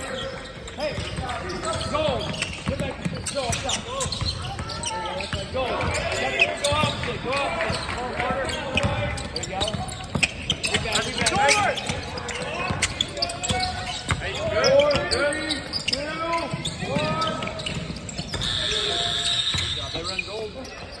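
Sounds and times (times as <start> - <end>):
players' voices: 0.0 - 21.0
sneakers squeaking: 0.0 - 21.0.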